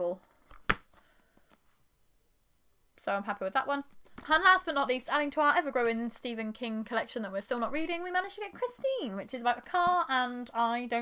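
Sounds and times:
book covers slapping shut: 0.4s - 1.0s.

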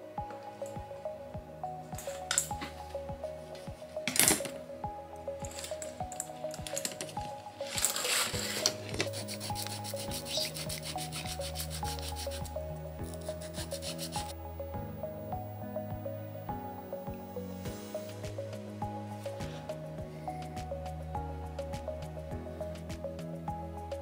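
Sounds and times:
slow melodic background music: 0.0s - 24.0s.

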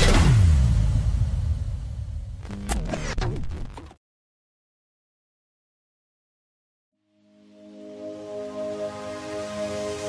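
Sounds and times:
deep rumbling boom: 0.0s - 2.5s.

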